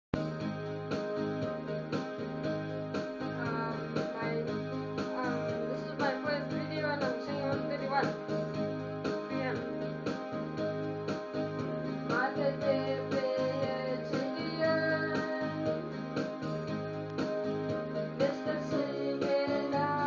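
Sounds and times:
electronic keyboard chords: 0.2s - 20.0s
boy singing a hymn: 12.2s - 15.7s, 18.2s - 20.0s.

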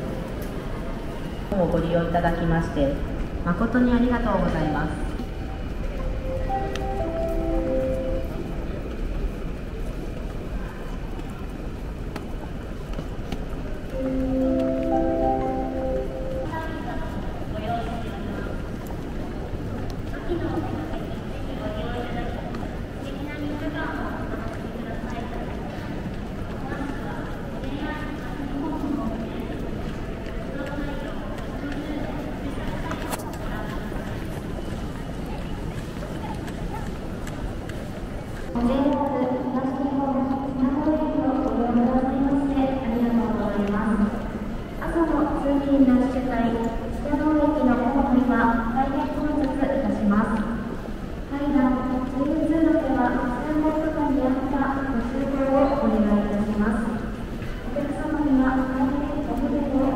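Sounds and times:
murmur of voices: 0.0s - 59.9s
crowd footsteps on hard floor: 5.0s - 21.2s, 24.3s - 39.0s.

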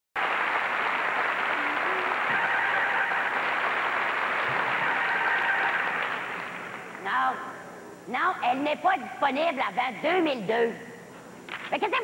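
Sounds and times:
audience applauding: 0.2s - 7.0s.

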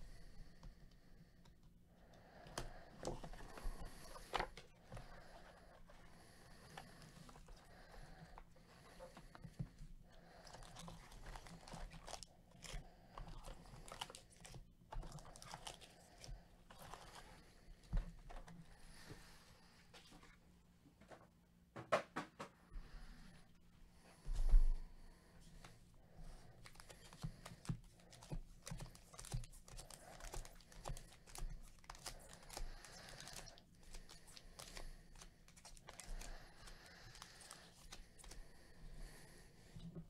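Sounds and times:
foil packs crinkling: 10.2s - 17.4s, 26.6s - 38.5s.

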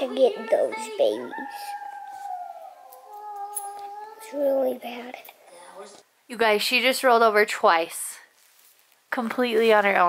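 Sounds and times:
wolf howling on television: 0.4s - 4.6s
second lower wolf howl: 1.3s - 4.3s.

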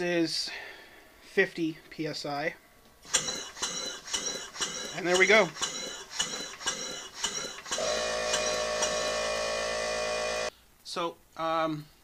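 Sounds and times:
air-powered engine puffing: 3.1s - 10.5s.

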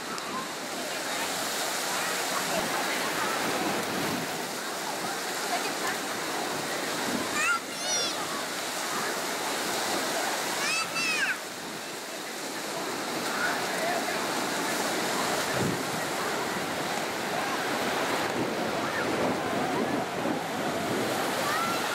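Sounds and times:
faint voices of bathers: 0.0s - 21.9s
sea surf and breaking waves: 0.0s - 21.9s.

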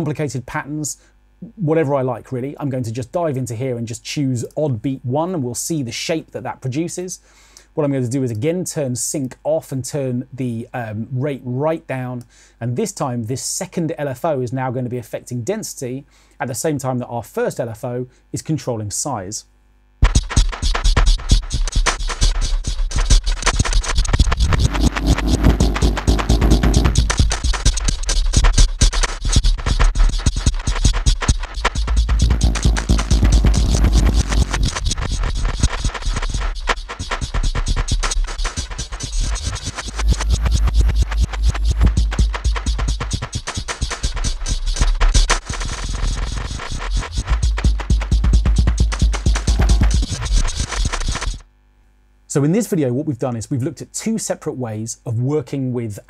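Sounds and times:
stuttering granular drum loop: 20.0s - 51.4s.

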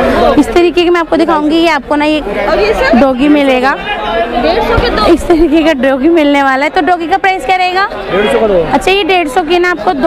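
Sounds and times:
background chatter: 0.0s - 10.0s
people talking close by: 0.0s - 10.0s.

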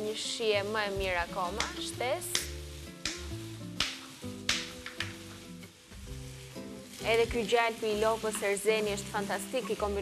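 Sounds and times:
background music: 0.0s - 10.0s
chicken and onion sizzling in oil: 0.0s - 10.0s.

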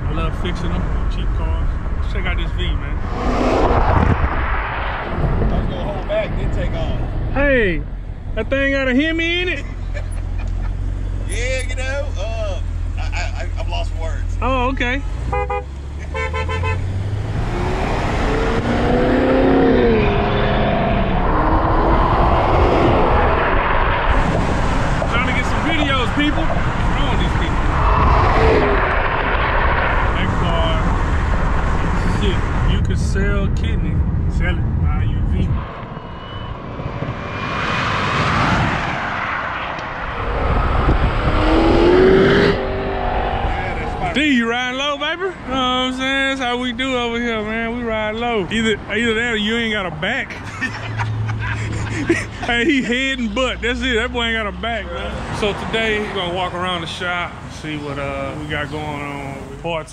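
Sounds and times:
car engine accelerating: 0.0s - 59.6s
wind and road noise: 0.0s - 59.9s.

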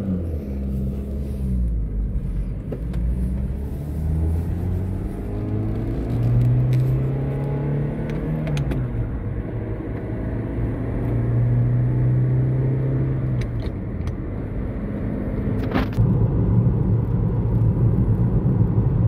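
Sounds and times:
car engine while driving: 0.0s - 19.0s
road noise: 0.0s - 19.0s.

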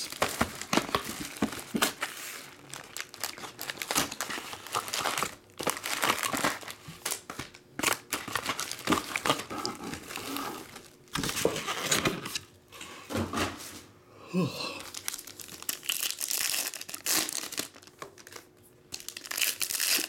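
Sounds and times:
plastic and foil wrappers crinkling: 0.0s - 12.5s, 14.8s - 20.0s.

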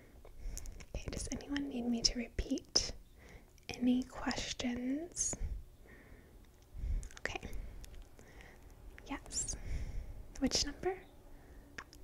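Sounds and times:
woman whispering: 1.0s - 2.9s, 7.1s - 7.6s, 9.0s - 9.6s, 10.4s - 11.1s
faint small clicks: 11.8s - 12.0s.

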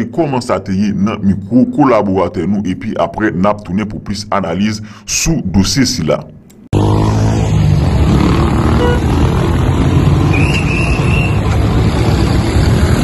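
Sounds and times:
vehicle engines rumbling: 6.7s - 13.0s
short high tone: 8.8s - 9.1s.

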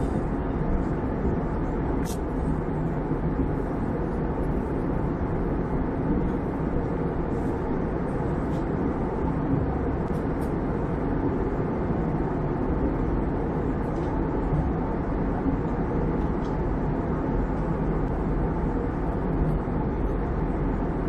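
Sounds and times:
jet airliner cabin noise: 0.0s - 21.0s.

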